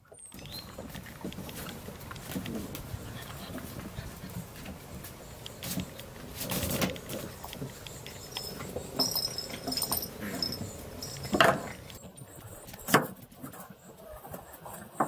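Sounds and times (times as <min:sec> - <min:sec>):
small scuffs and bumps: 0:00.3 - 0:15.0.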